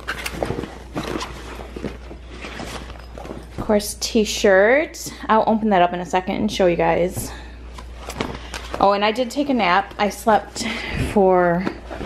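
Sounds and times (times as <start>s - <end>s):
fabric and packaging rustling: 0.0s - 4.0s, 7.0s - 12.0s.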